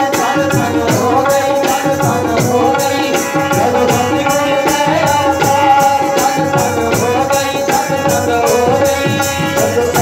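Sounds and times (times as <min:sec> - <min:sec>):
percussion beat with jingles: 0:00.0 - 0:10.0
person singing: 0:00.0 - 0:10.0.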